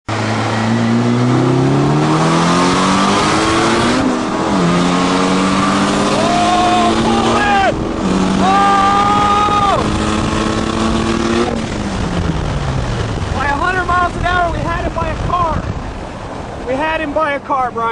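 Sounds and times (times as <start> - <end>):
car engine accelerating: 0.1 - 16.6
people shouting and laughing: 6.1 - 7.8, 8.4 - 9.9.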